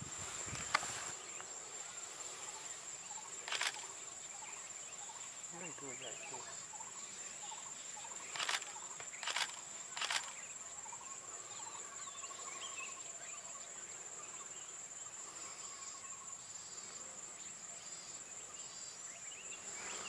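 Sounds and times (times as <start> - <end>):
insect chorus drone: 0.0 - 20.0.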